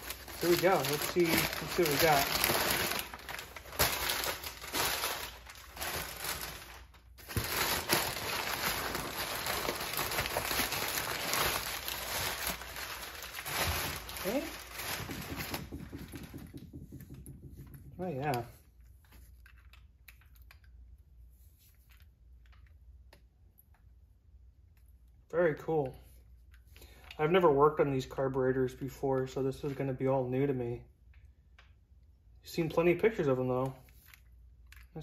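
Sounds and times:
paper crinkling and rustling: 0.0 - 16.3.

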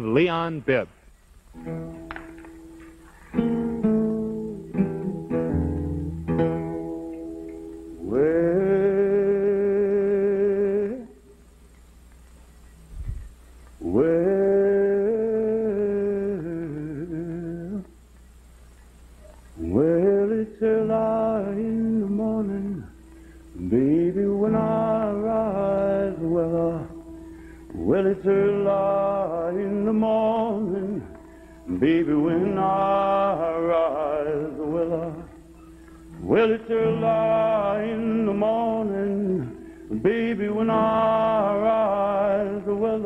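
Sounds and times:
acoustic guitar chords: 1.5 - 11.7, 13.8 - 18.0, 19.3 - 43.0
man singing unaccompanied: 8.0 - 11.4, 13.8 - 18.0, 19.6 - 43.0.

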